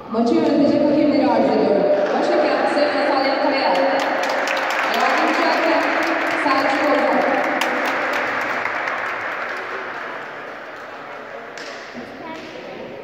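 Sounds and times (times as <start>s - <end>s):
voices: 0.0s - 4.2s, 4.8s - 8.3s, 9.4s - 13.0s
spectators applauding: 2.1s - 11.6s.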